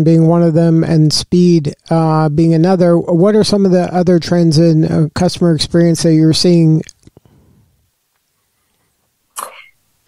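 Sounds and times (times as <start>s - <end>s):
person coughing: 9.4s - 9.8s.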